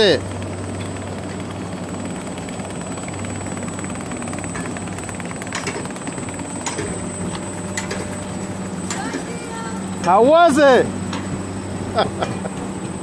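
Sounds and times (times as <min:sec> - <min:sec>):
coaster cart rolling on rail track: 0:00.0 - 0:13.0.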